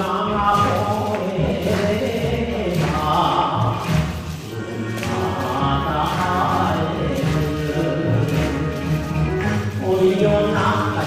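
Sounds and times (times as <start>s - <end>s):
voices singing over instrumental backing: 0.0s - 11.0s.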